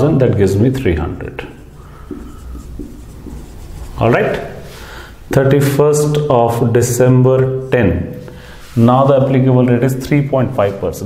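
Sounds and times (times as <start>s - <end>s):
low room hum: 0.0s - 9.9s
marker pen writing on whiteboard: 0.3s - 4.9s.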